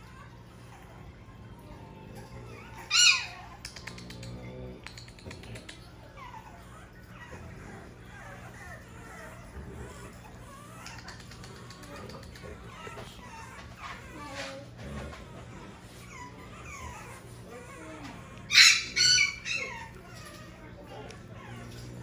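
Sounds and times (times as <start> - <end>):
puppy yelping and whimpering: 0.0 - 22.0.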